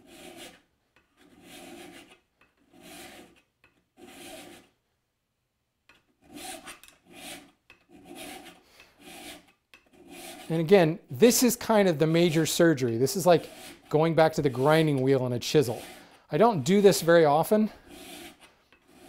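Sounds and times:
file rasping on metal edge: 0:00.0 - 0:04.7, 0:06.2 - 0:10.6, 0:12.0 - 0:16.2, 0:17.8 - 0:19.0.

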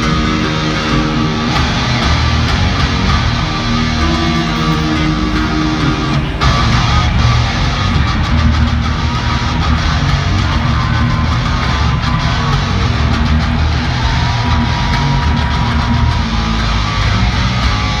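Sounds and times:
bass guitar: 0:00.0 - 0:18.0
electric guitar: 0:00.0 - 0:18.0.

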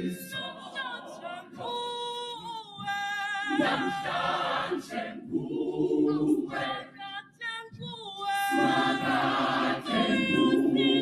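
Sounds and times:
women's gospel choir singing: 0:00.0 - 0:11.0.

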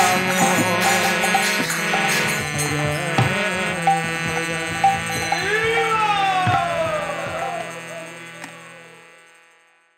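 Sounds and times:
sung note gliding down: 0:00.0 - 0:09.2
harmonium sustained chord: 0:00.0 - 0:09.9.

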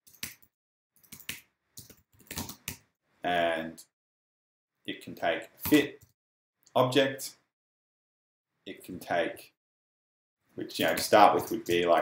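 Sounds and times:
computer keyboard keystrokes: 0:00.1 - 0:02.8.

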